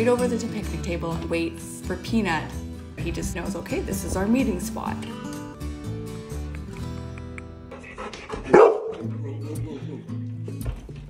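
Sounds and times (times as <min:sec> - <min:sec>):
background music: 0:00.0 - 0:11.0
dog barking: 0:08.3 - 0:09.1.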